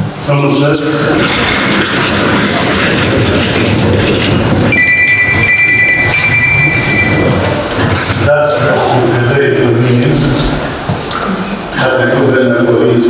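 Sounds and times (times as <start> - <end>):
chairs scraping: 0.6 - 12.0
high-pitched tone: 4.7 - 8.2.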